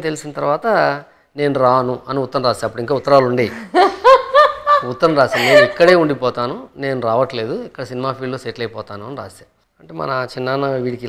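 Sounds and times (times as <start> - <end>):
person speaking: 0.0 - 11.0
woman laughing: 3.0 - 6.0.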